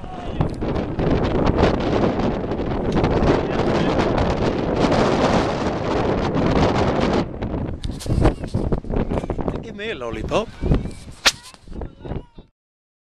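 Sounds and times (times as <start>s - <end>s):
wind noise on microphone: 0.0s - 12.5s.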